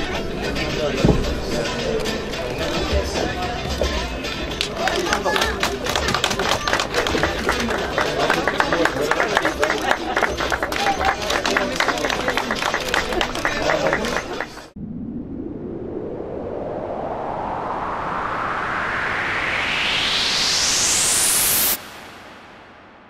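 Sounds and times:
crowd voices: 0:00.0 - 0:14.8
crowd clapping: 0:04.3 - 0:14.8
rising whoosh sound effect: 0:14.7 - 0:23.0.

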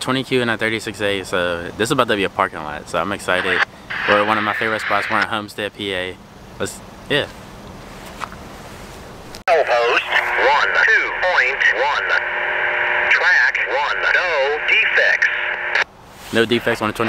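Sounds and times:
tinny radio voice transmission: 0:03.4 - 0:05.3, 0:09.5 - 0:15.8.

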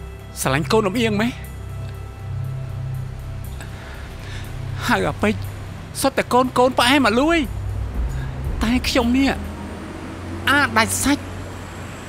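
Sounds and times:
soft droning background music: 0:00.0 - 0:12.0
breathy gasp: 0:03.6 - 0:04.6.

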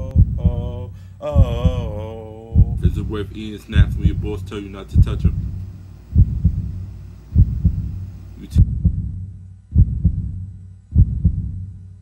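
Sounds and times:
heartbeat thumps: 0:00.0 - 0:11.9
faint low hum: 0:00.0 - 0:12.0.

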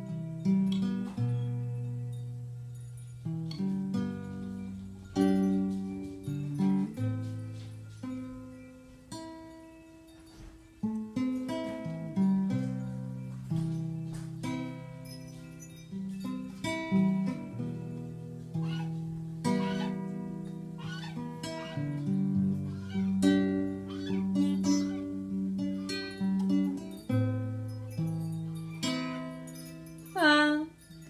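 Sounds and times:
acoustic guitar chords: 0:00.0 - 0:30.8.

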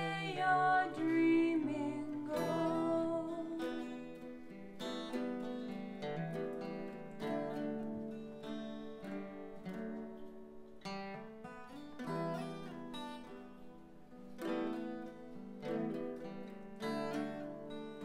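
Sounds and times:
acoustic guitar playing: 0:00.0 - 0:18.0.

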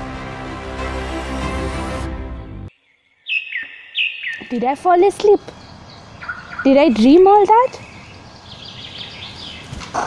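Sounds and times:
background music: 0:00.0 - 0:02.7
bird chirping: 0:02.7 - 0:10.0.

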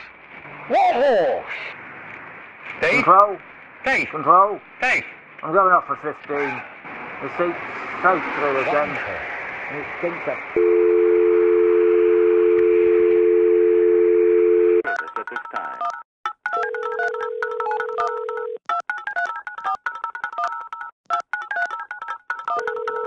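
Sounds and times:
telephone dial tone: 0:10.6 - 0:14.9, 0:16.6 - 0:23.0
music of keypad dialing tones: 0:15.8 - 0:23.0.

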